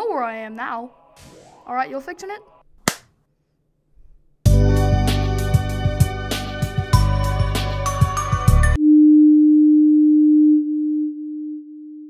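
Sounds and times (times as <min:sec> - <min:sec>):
background music: 0:04.4 - 0:08.8.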